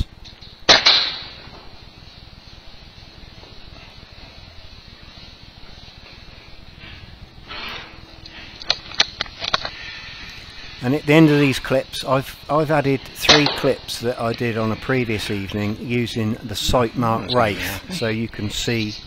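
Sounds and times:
air rifle shot: 0.7 - 1.5.

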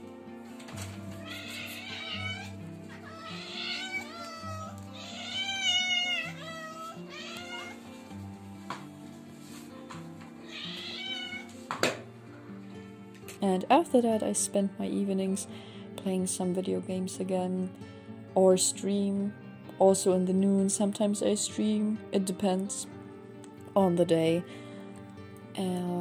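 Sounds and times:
background music: 0.0 - 26.0
cats meowing: 1.1 - 7.9, 10.4 - 11.6.

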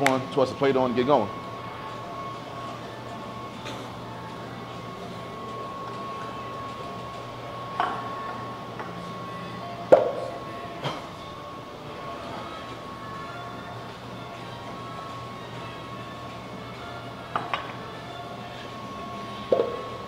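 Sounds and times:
steady hum: 0.0 - 20.0.

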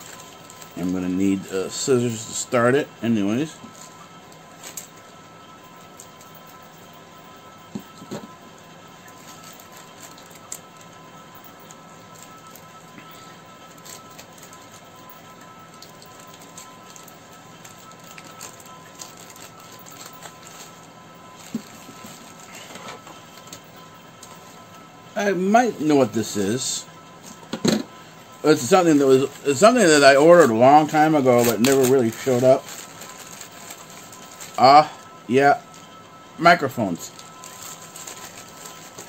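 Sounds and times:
cardboard parcel rustling: 0.0 - 6.6, 9.0 - 24.8, 28.4 - 36.0, 36.6 - 39.0
room hiss and hum: 0.0 - 39.0.

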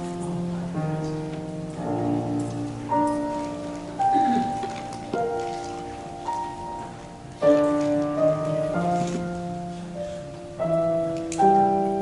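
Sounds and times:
slow piano music: 0.0 - 12.0.

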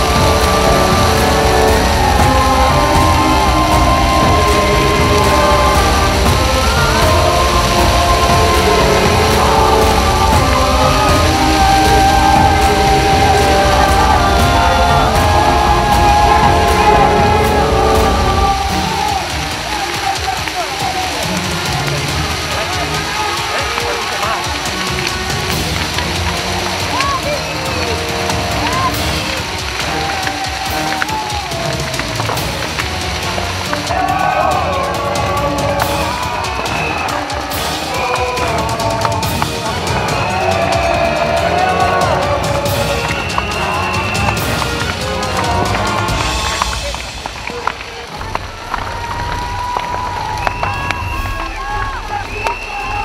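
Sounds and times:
background music sustained tones: 0.0 - 53.0
voices: 0.0 - 53.0.

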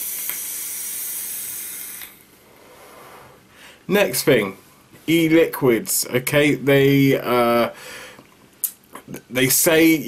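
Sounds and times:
electronic cigarette draw hiss: 0.0 - 3.4.

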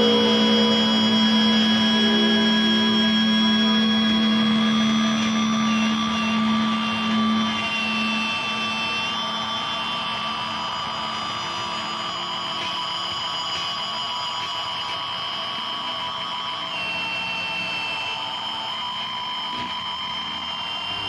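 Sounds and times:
processed electric guitar drone: 0.0 - 21.0.

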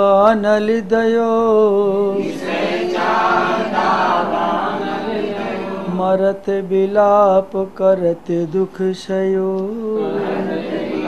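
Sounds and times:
group of voices chanting: 2.2 - 5.9, 10.0 - 11.0
man chanting: 5.7 - 11.0.

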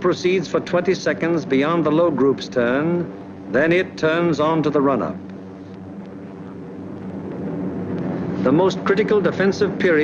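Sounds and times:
piston aircraft engines droning: 0.0 - 10.0.

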